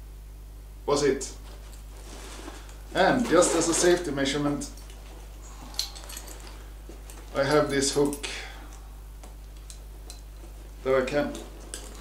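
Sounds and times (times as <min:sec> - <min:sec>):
steady low hum: 0:00.0 - 0:12.0
fabric bag rustling: 0:01.4 - 0:08.0, 0:09.8 - 0:12.0.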